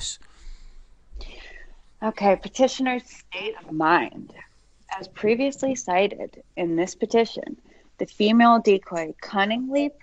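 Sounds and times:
person speaking: 0.0 - 0.2, 1.2 - 10.0
breathy whisper: 0.0 - 0.6.

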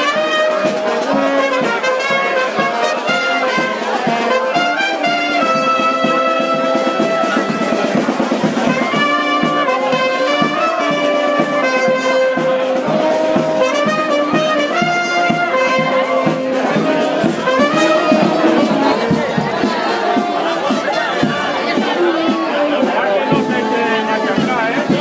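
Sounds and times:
trumpet and brass horn melody: 0.0 - 25.0
bass drum beat: 3.1 - 25.0.

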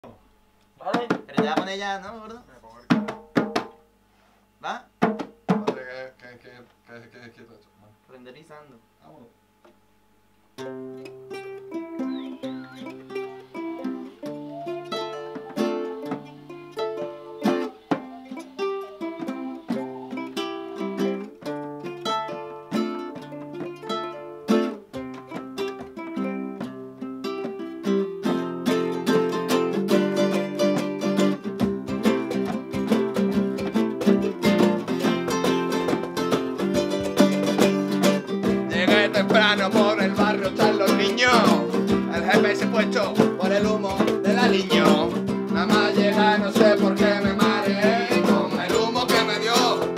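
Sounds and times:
acoustic guitar: 0.8 - 6.2, 9.6 - 49.9
ukulele playing: 10.6 - 49.9.

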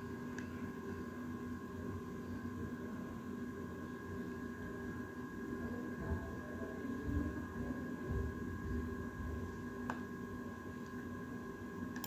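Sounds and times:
steady background hum: 0.0 - 12.0.

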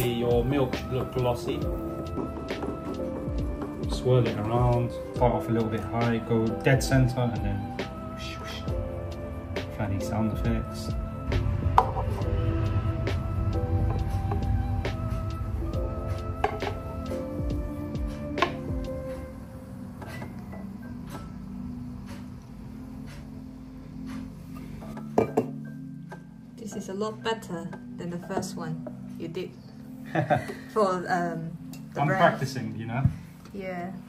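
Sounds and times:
background music: 0.0 - 34.0
metal pitcher clinking glass: 25.1 - 25.6.

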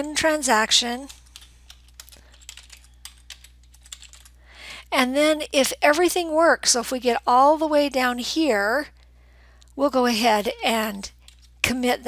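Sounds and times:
keyboard typing: 0.8 - 4.4, 11.0 - 11.6.

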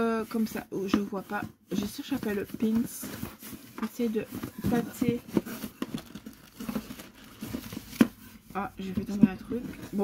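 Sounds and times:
packing paper rustling: 1.3 - 10.0.

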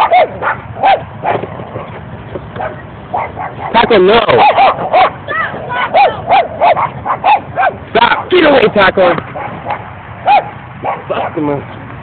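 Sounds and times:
small dog yapping: 0.0 - 1.9, 2.6 - 8.3, 9.4 - 11.4.

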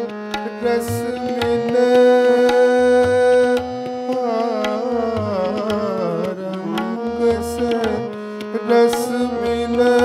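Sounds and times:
harmonium holding a note: 0.0 - 10.0
tabla strokes: 0.0 - 10.0.

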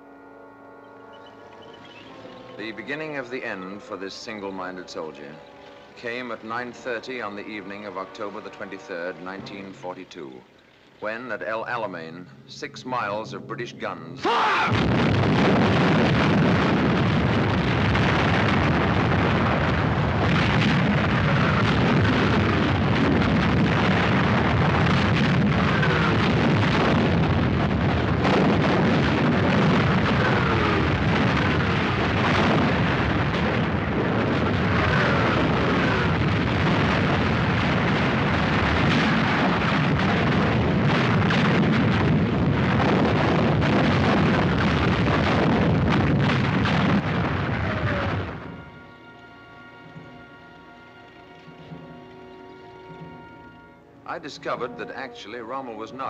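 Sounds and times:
shells bursting: 1.4 - 9.9, 14.5 - 51.4
artillery guns firing: 14.5 - 48.9.

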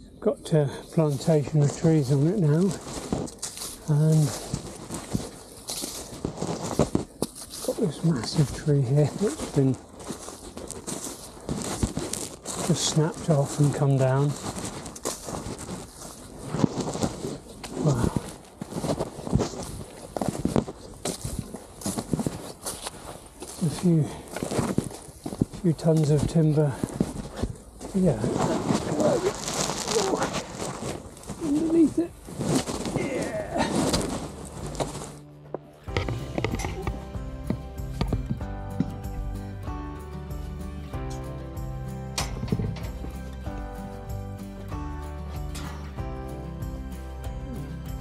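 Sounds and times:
clothing rustling: 1.0 - 35.2
footsteps on dry leaves: 1.0 - 48.0
person grunting: 33.0 - 33.8
music with plucked notes: 34.5 - 48.0.

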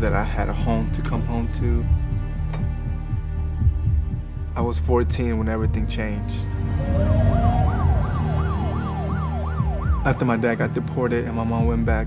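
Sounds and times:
low steady drone: 6.4 - 10.2
emergency vehicle siren: 6.7 - 10.2.

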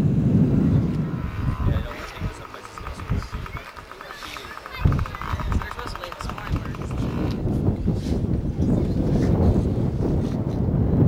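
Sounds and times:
wind rumbling on microphone: 0.0 - 11.0
faint voices: 0.7 - 9.6.

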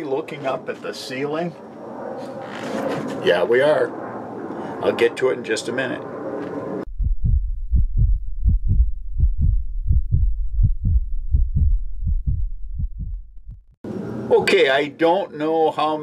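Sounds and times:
heartbeat thuds: 6.9 - 13.8.

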